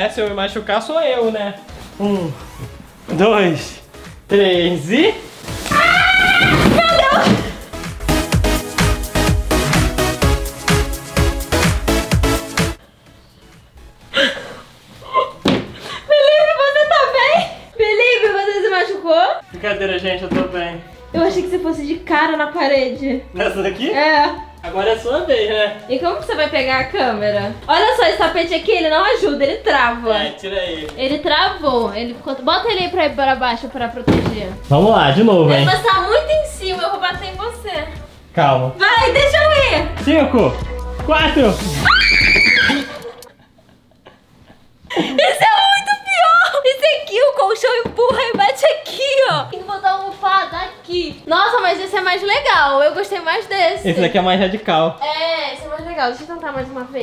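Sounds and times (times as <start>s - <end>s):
woman screaming: 5.6s - 7.5s, 41.8s - 43.2s.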